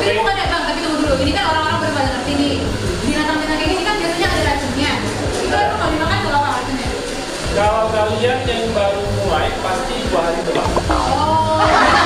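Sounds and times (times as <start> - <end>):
background music: 0.0 - 12.0
people talking: 0.0 - 12.0.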